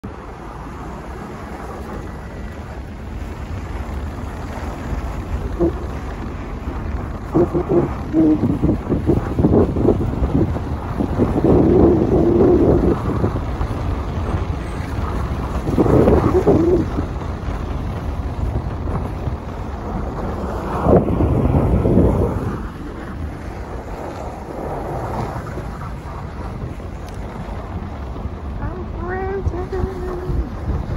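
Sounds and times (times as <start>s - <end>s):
vehicle rumbling on snow: 0.0s - 30.9s.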